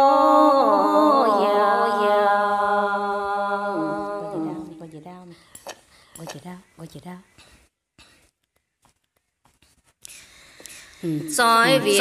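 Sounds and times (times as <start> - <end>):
woman singing unaccompanied: 0.0 - 4.9, 11.3 - 12.0.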